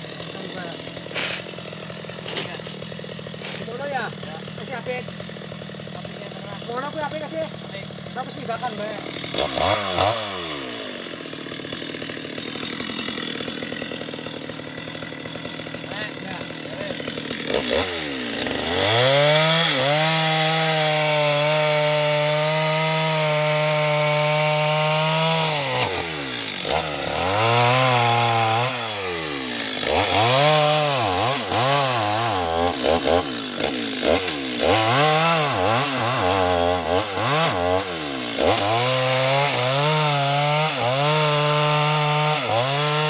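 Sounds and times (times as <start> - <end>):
chainsaw revving and cutting wood: 0.0 - 43.0.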